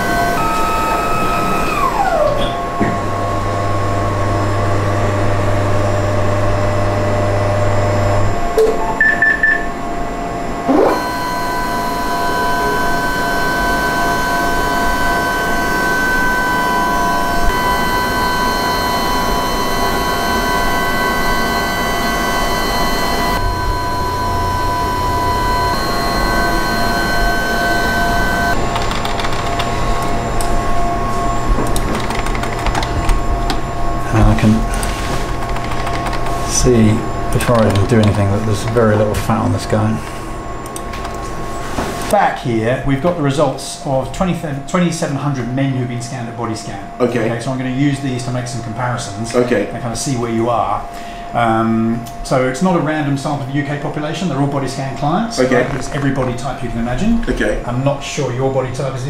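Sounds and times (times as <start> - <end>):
scanner motors whining: 0.0 - 42.1.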